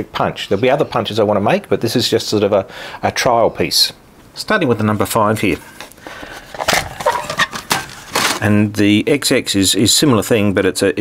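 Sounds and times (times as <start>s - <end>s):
metal scraping: 5.6s - 8.5s
metal tin clicks and rattles: 6.5s - 8.4s.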